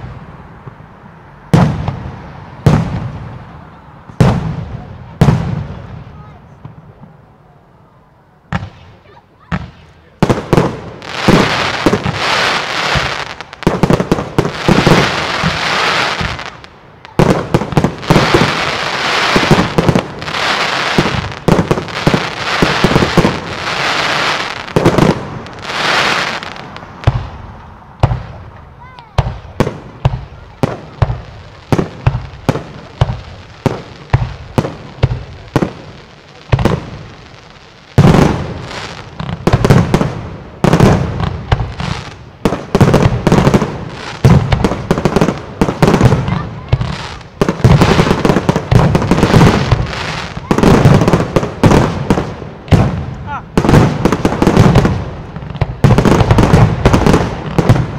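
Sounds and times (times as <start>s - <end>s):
fireworks sharp bangs: 0.0s - 7.2s, 8.5s - 57.9s
fireworks volleys and crackling: 0.0s - 57.9s.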